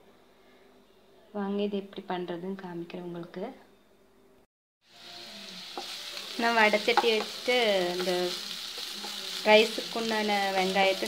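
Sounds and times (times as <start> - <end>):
onions sizzling in oil: 4.8 - 11.0.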